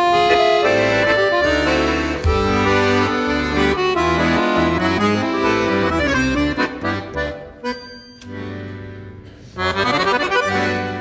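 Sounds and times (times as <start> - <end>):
piano accordion playing chords: 0.0 - 11.0.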